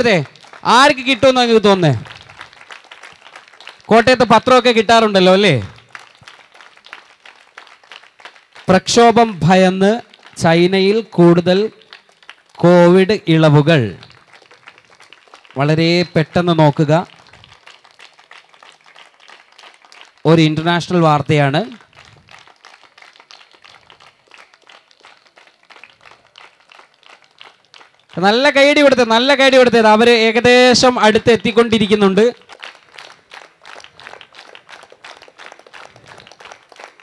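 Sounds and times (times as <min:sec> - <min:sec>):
people clapping: 0:00.0 - 0:37.0.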